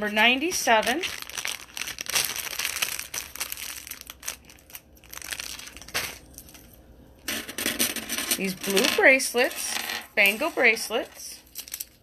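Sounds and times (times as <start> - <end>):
plastic bag crinkling: 0.0 - 6.9, 10.2 - 12.0.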